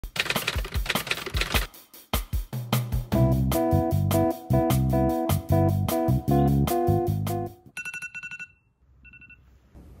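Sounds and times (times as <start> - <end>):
fast sharp typing clicks: 0.0 - 1.7.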